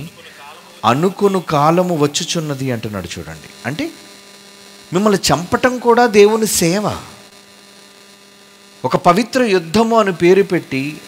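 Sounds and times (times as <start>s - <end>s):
man speaking: 0.0s - 4.0s, 4.9s - 7.2s, 8.8s - 11.0s
electrical mains hum: 0.0s - 11.0s.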